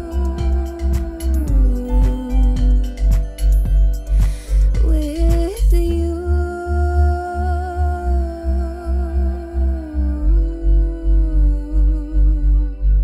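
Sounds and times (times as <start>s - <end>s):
woman humming: 0.0s - 3.6s, 4.3s - 13.0s
looped electronic beat: 0.0s - 5.7s.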